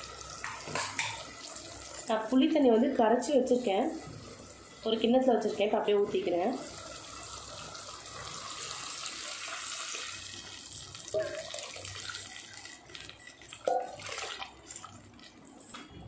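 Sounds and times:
liquid pouring into clay pot: 0:10.9 - 0:15.4.

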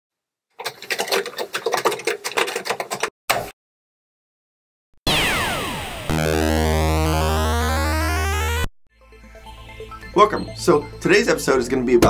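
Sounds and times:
typing on mechanical keyboard: 0:00.6 - 0:03.1
synthesizer tone with falling sweeps: 0:05.1 - 0:08.7.

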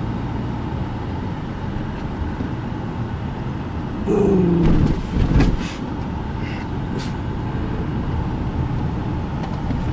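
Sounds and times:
car road noise: 0:00.0 - 0:09.9
wind rushing through car window: 0:04.0 - 0:09.9.

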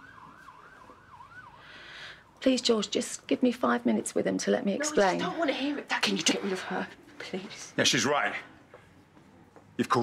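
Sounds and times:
faint siren yelping: 0:00.0 - 0:01.9.

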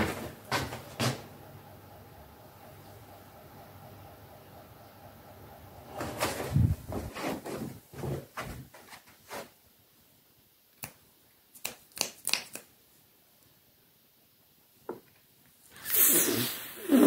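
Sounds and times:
rustling and handling noise: 0:05.9 - 0:09.8.

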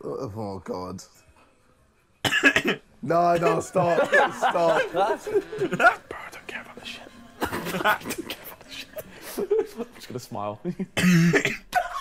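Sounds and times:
person coughing: 0:02.2 - 0:02.8, 0:05.5 - 0:06.2, 0:11.0 - 0:12.0.

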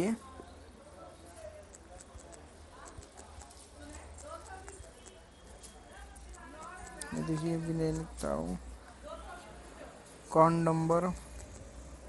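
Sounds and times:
typing on smartphone keyboard: 0:01.6 - 0:08.2, 0:11.1 - 0:12.0.

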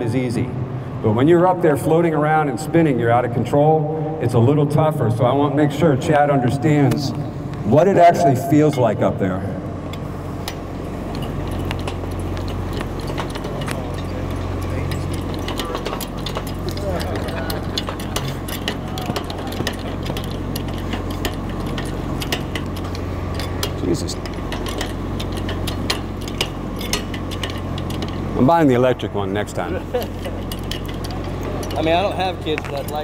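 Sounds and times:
steady low hum: 0:00.0 - 0:33.0
metal clicks of hoist pumping: 0:10.4 - 0:29.0, 0:29.6 - 0:33.0.

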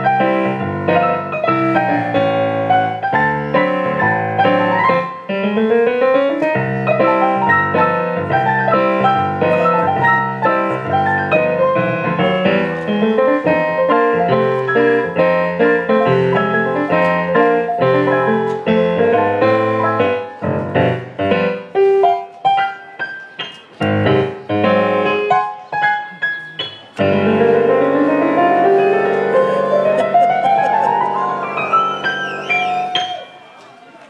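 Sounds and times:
piano played four-hands: 0:00.0 - 0:33.7.

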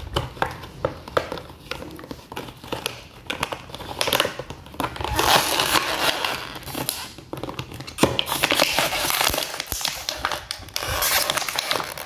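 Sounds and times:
plastic bottle crinkling: 0:00.0 - 0:12.0.

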